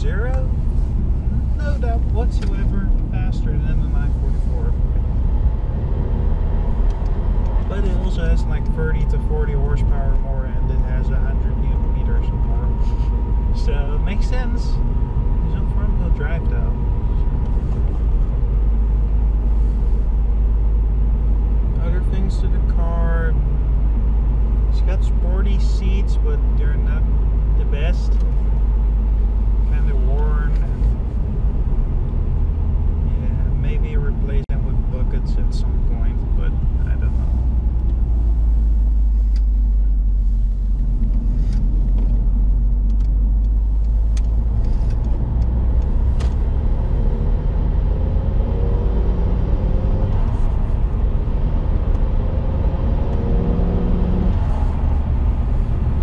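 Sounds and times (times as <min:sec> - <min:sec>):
car engine and road rumble: 0:00.0 - 0:56.0.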